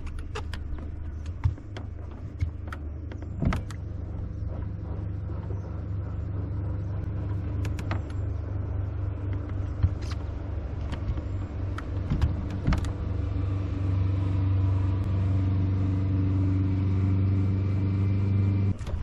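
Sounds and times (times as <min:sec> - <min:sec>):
boat motor humming: 0:00.0 - 0:19.0.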